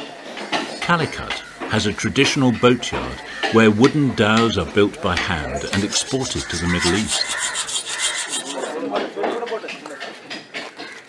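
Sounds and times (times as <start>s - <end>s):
people talking: 0.8s - 10.0s
hand saw cutting wood: 5.2s - 9.4s.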